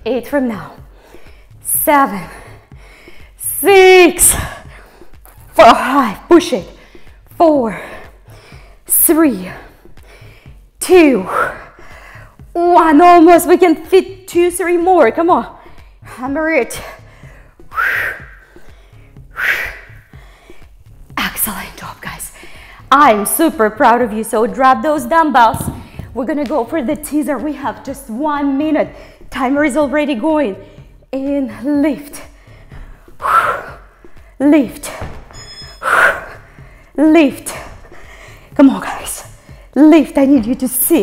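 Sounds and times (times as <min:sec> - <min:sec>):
faint background music with beat: 0:00.0 - 0:41.0.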